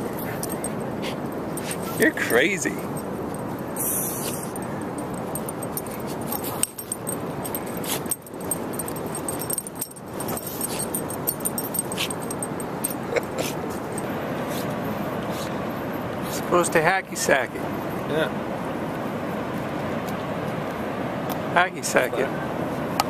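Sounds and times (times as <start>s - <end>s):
dog paws scraping sand: 1.0s - 12.5s.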